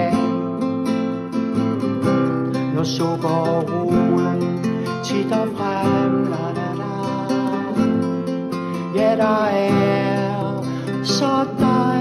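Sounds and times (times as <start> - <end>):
man singing: 0.0 - 0.5, 2.5 - 12.0
acoustic guitar strumming: 0.0 - 12.0.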